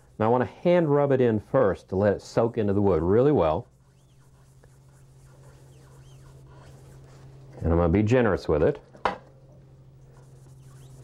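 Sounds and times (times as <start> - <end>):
steady low hum: 0.0 - 11.0
paper towel rubbing wood: 2.3 - 7.6, 10.1 - 11.0.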